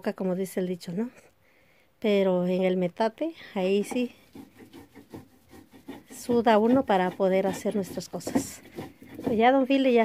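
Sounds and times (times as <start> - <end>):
stone grinding on stone: 3.6 - 10.0.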